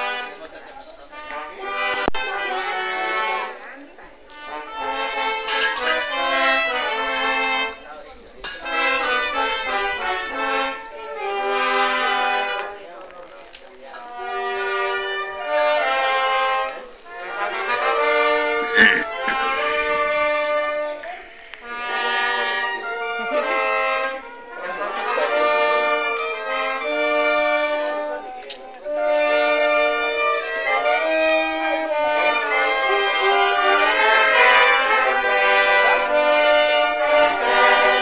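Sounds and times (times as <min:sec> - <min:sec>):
brass band playing slow melody: 0:00.0 - 0:00.4, 0:01.1 - 0:07.8, 0:08.5 - 0:12.8, 0:14.1 - 0:28.2, 0:28.8 - 0:38.0.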